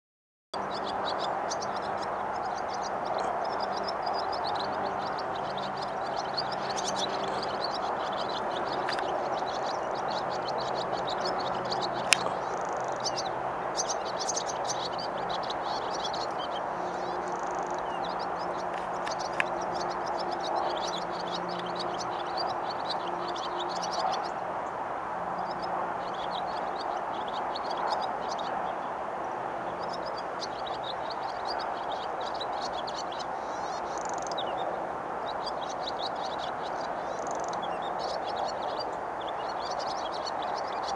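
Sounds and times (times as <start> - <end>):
steady background noise: 0.6 - 40.9
swallows twittering: 0.6 - 40.9.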